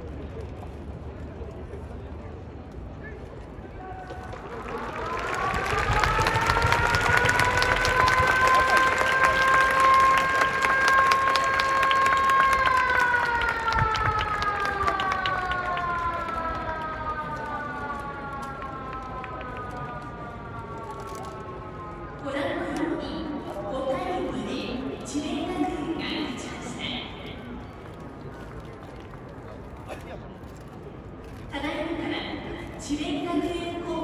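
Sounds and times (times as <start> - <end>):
crowd clapping: 3.8 - 20.2
long wailing siren: 4.2 - 26.4.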